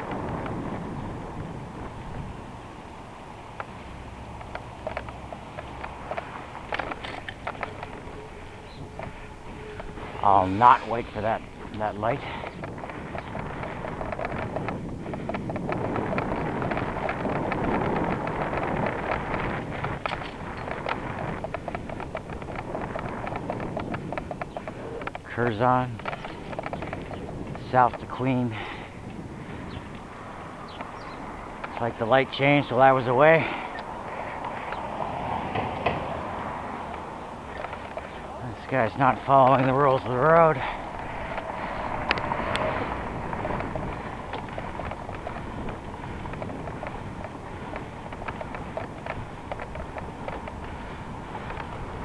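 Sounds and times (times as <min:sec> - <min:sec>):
bike clicks and rattles: 0:00.0 - 0:02.6, 0:03.3 - 0:52.0
wind rushing over microphone: 0:00.0 - 0:52.0.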